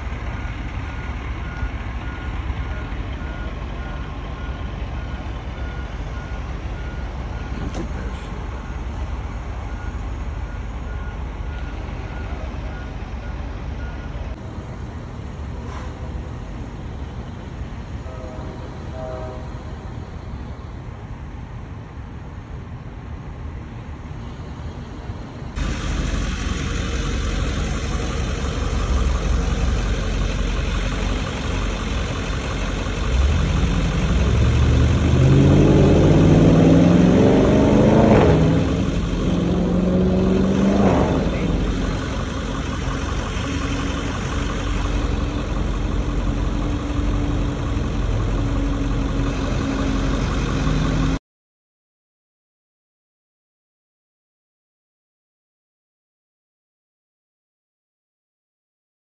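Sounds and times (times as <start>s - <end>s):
road noise: 0.0s - 51.2s
vehicle engine speeding up: 25.6s - 51.2s.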